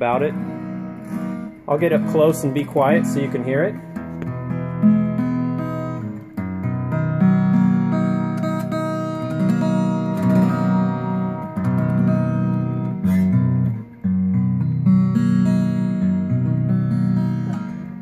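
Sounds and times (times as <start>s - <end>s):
acoustic guitar chords: 0.0s - 18.0s.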